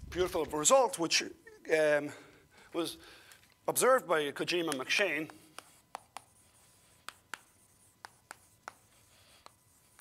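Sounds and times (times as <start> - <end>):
chalk tapping on blackboard: 4.7 - 10.0.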